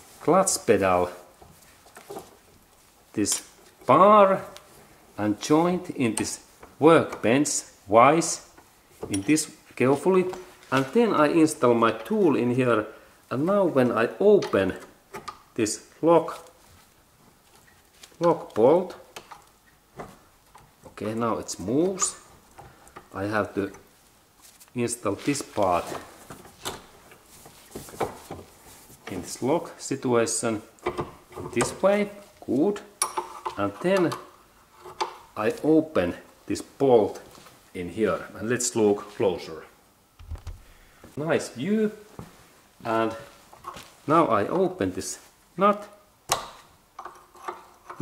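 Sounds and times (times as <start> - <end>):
light clicks and knocks of metal parts: 6.0 - 7.4, 30.7 - 35.7, 46.3 - 48.0.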